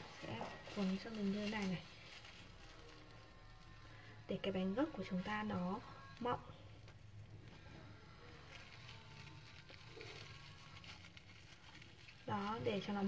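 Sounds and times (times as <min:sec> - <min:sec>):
low steady hum: 0:00.0 - 0:13.0
plastic cling film crinkling: 0:00.0 - 0:13.0.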